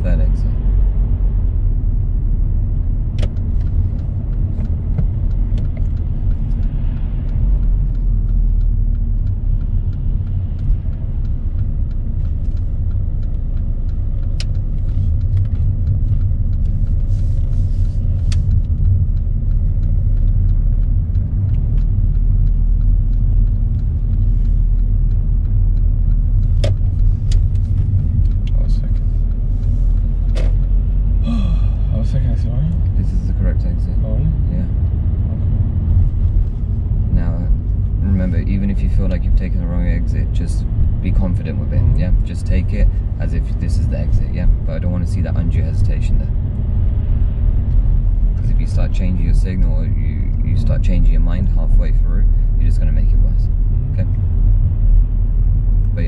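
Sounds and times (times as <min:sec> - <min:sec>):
car engine and road noise: 0:00.0 - 0:56.0
faint clicks: 0:03.2 - 0:30.8.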